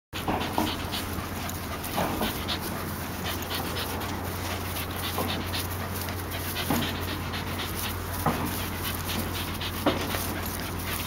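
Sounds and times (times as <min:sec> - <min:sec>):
dog panting: 0:00.2 - 0:11.0.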